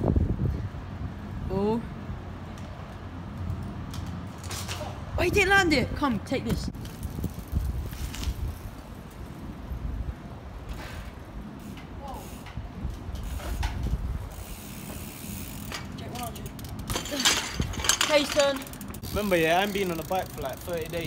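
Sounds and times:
bicycle freewheel ticking: 11.6 - 17.2, 18.0 - 21.0.

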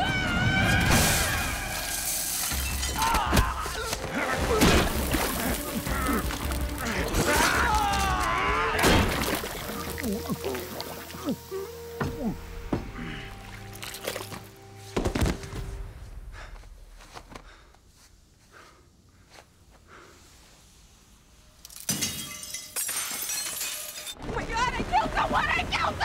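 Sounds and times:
dramatic music: 0.0 - 16.4
loud shattering crash: 0.4 - 3.4, 8.8 - 9.6.

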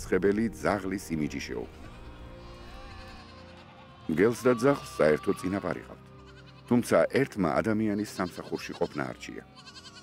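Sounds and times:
quiet background music: 0.0 - 10.0
sheep and goats bleating: 1.3 - 10.0.

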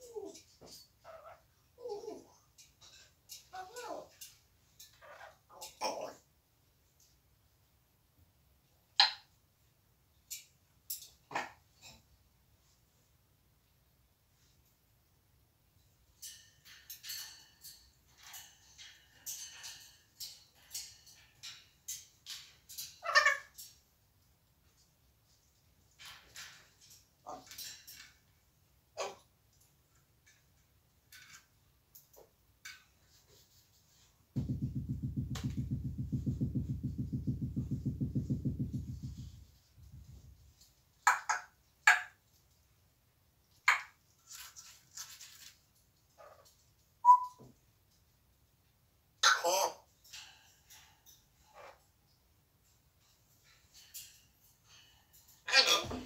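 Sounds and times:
parrot calling: 22.9 - 23.6, 47.0 - 47.4, 49.2 - 49.9, 55.4 - 56.0
parrot whistle: 47.0 - 47.4.

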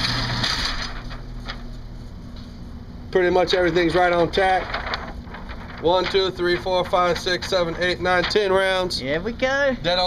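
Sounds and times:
mechanical hum of shooting range: 0.0 - 10.0.

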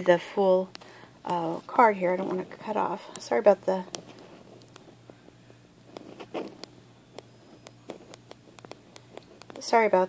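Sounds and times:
low steady hum: 0.0 - 10.0
light clicks and taps: 5.9 - 9.7.

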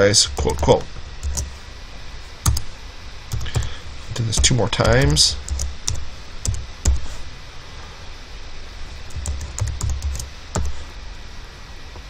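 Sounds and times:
steady background hiss: 0.0 - 12.0
keyboard keystroke clicks: 2.5 - 2.7.

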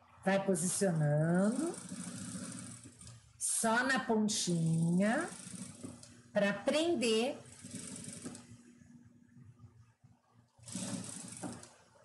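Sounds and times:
sewing machine stitching: 0.7 - 8.7, 10.6 - 12.0.

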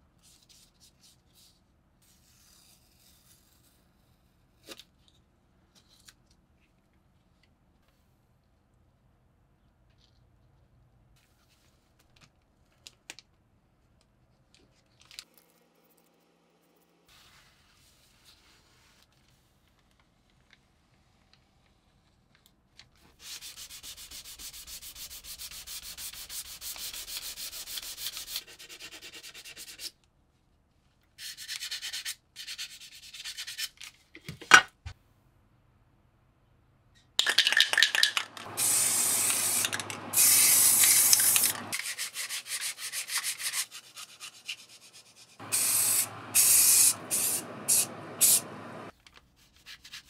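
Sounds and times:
aerosol can spraying: 38.4 - 41.9, 45.4 - 48.9.

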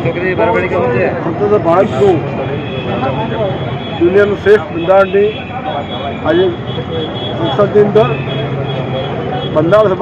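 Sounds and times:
man speaking: 0.0 - 8.4.

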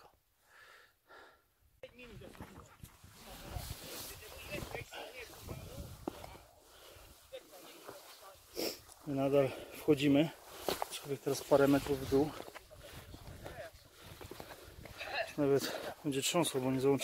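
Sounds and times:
camera rubbing against clothing: 2.1 - 6.1
heavy breathing: 5.9 - 10.8, 12.3 - 16.0.

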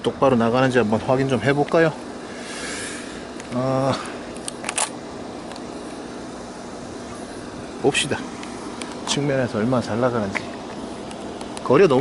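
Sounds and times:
even hiss: 0.0 - 12.0.

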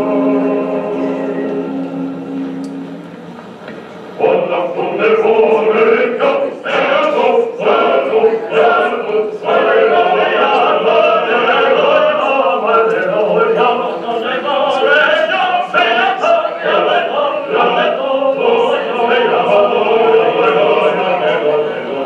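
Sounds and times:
choir singing over loudspeakers: 0.0 - 3.1, 4.2 - 22.0.

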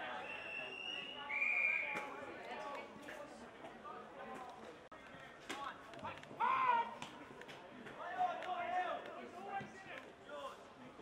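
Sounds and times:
whistle blast: 0.1 - 2.0.

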